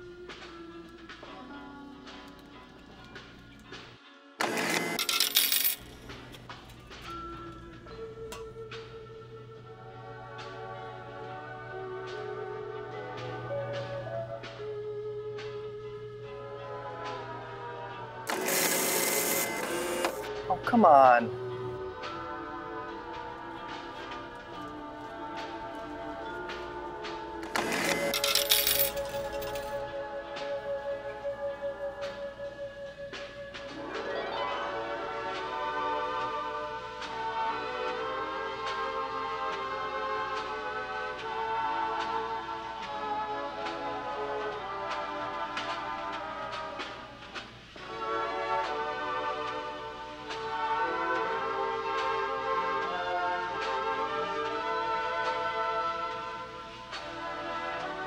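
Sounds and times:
background music: 0.0 - 58.0
coins clattering into tray: 4.4 - 6.5, 27.4 - 29.8.

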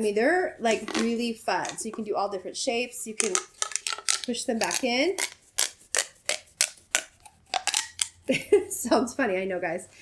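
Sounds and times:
plastic pop tube clicking: 3.2 - 8.2.

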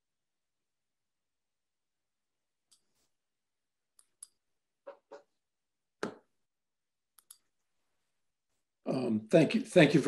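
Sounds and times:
computer mouse clicks: 2.7 - 2.9, 4.0 - 5.3, 7.1 - 7.5.

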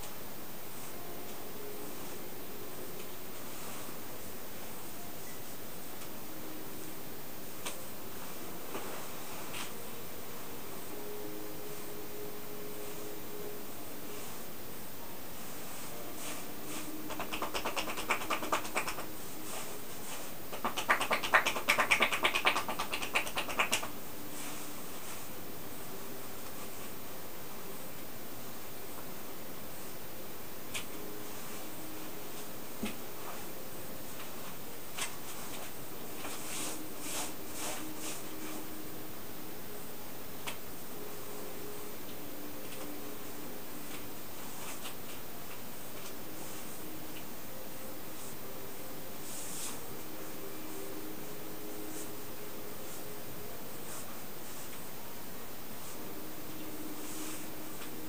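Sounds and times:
steady hiss: 0.0 - 58.0
soft brushing on skin: 15.3 - 20.6, 24.1 - 25.5, 31.0 - 38.8, 49.1 - 50.9, 51.7 - 55.0, 55.7 - 58.0
rapid hand tapping on body: 17.1 - 19.1, 20.5 - 23.9.

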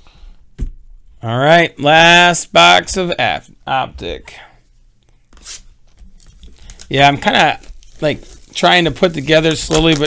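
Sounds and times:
plastic shrink wrap tearing: 6.2 - 10.0.

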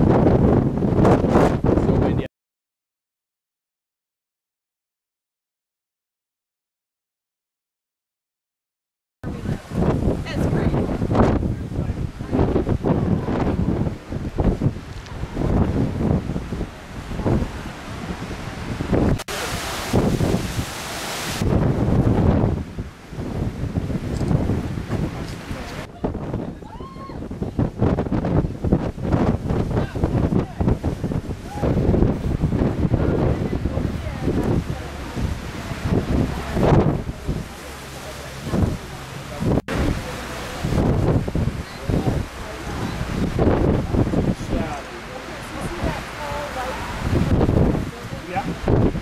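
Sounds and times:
strong wind buffeting microphone: 0.0 - 2.3, 9.2 - 49.0.

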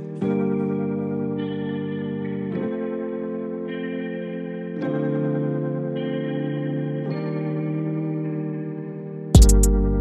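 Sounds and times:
music with slow held chords: 0.0 - 10.0.

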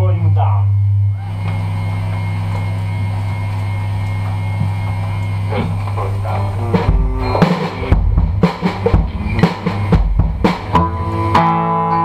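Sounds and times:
faint high whine: 0.0 - 11.3
low drone of amplified instruments: 1.0 - 12.0.

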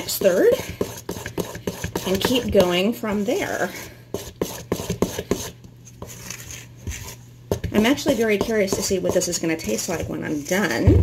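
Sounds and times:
wooden spoon stirring batter: 0.0 - 11.0.

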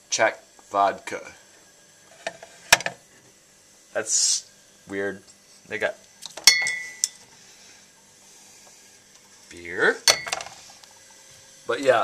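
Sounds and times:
glass bottles clinking: 6.4 - 7.2, 10.1 - 10.6.

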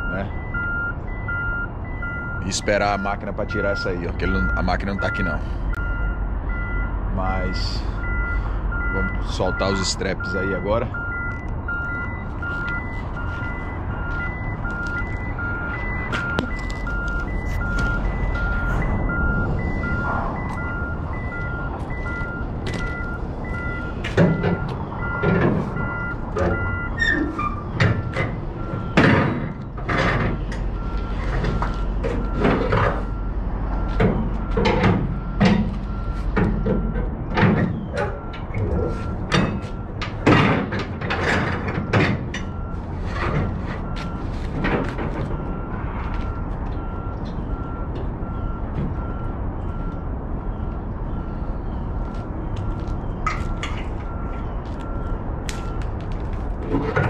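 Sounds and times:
reversing alarm beeping: 0.0 - 57.0
truck engine idling: 3.8 - 40.2, 41.6 - 56.9.

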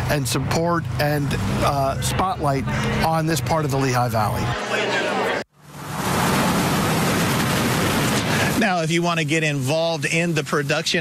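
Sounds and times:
pickup truck driving past: 0.0 - 8.6.

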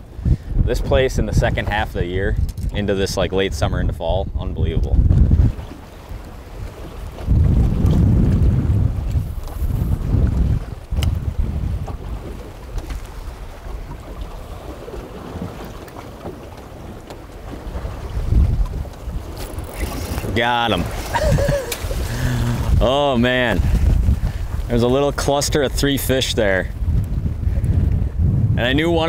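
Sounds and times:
choppy waves: 0.0 - 29.0
wind buffeting microphone: 0.0 - 29.0.

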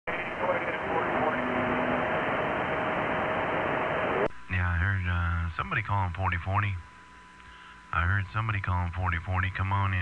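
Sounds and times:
radio static and hiss: 0.1 - 10.0.

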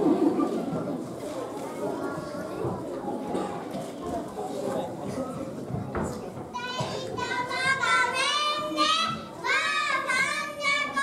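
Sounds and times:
murmur of children's voices: 0.0 - 11.0
children speaking in unison: 6.5 - 11.0.

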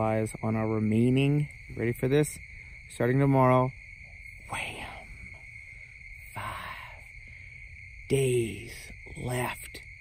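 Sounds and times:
night insects chirping: 0.0 - 10.0
breathy spoken word: 4.4 - 5.5, 6.1 - 9.8.

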